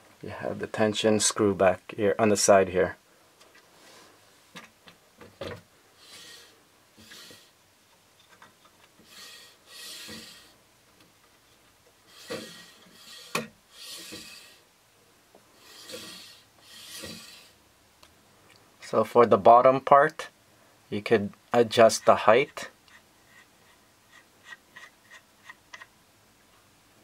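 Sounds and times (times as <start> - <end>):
slider carriage rubbing hiss: 6.0 - 7.6, 9.0 - 10.6, 12.0 - 14.7, 15.6 - 17.6.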